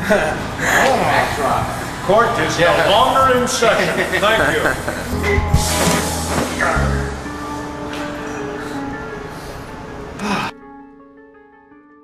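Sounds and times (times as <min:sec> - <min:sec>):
background music: 0:00.0 - 0:12.0
noisy hiss: 0:00.4 - 0:10.1
plucked-string music: 0:04.9 - 0:08.2.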